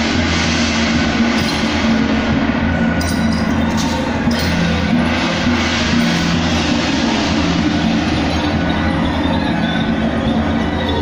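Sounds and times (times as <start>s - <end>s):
cymbals clashing: 0.0s - 11.0s
gongs: 0.0s - 11.0s
steady low drone: 0.0s - 11.0s
drum playing: 1.2s - 9.0s.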